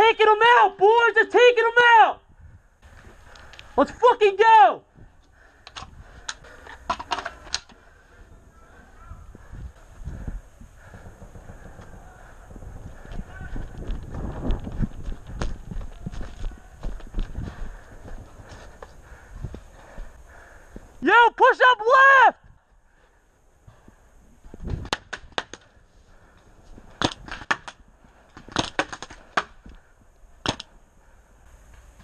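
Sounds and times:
low thuds and rustling of gear: 9.4s - 20.9s, 23.6s - 25.8s
paintball marker shots: 27.0s - 27.8s, 28.4s - 29.6s, 30.4s - 30.7s.

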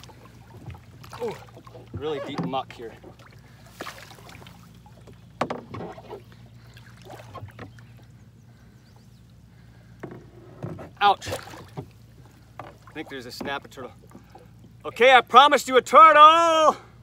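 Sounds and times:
knocks and scrapes in kayak: 0.0s - 8.0s, 10.0s - 14.4s.

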